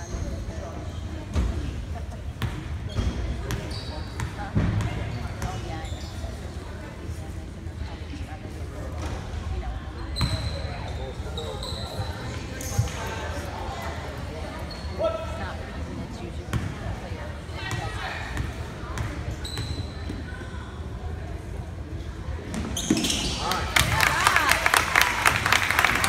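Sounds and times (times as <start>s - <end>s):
indistinct chatter of spectators: 0.0s - 26.0s.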